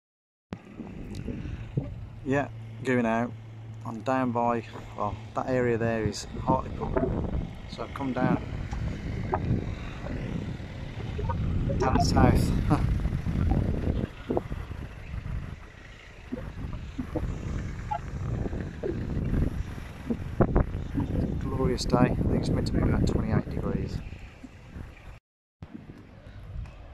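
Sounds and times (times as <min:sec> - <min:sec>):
wind buffeting microphone: 0:00.6 - 0:02.5, 0:05.4 - 0:26.9.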